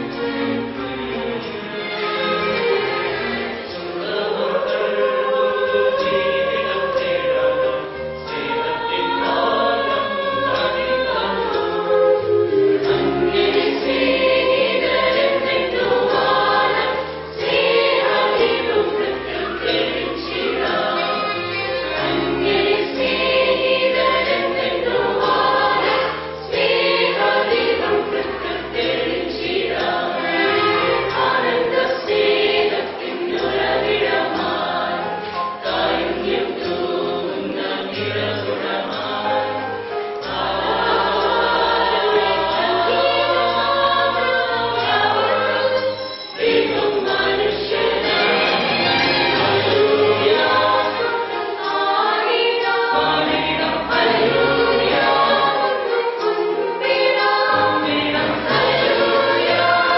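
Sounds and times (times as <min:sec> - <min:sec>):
mixed choir singing a carol: 0:00.0 - 0:59.9.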